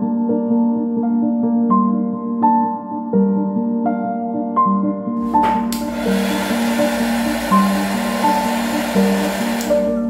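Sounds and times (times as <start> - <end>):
soft piano music: 0.0 - 10.0
heat gun blowing air: 5.2 - 10.0.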